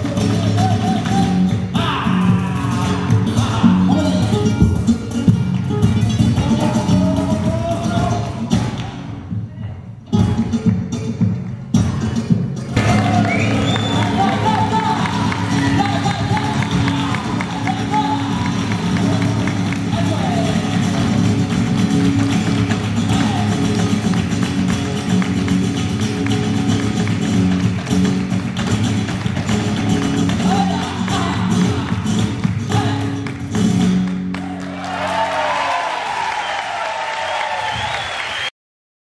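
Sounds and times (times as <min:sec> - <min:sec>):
flamenco guitars: 0:00.0 - 0:36.8.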